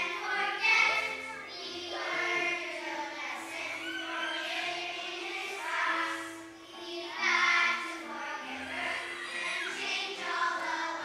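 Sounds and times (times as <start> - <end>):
children singing in unison: 0.0 - 11.0.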